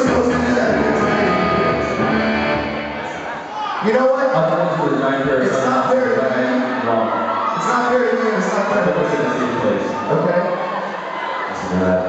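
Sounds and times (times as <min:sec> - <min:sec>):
electric guitar held notes: 0:00.0 - 0:03.4.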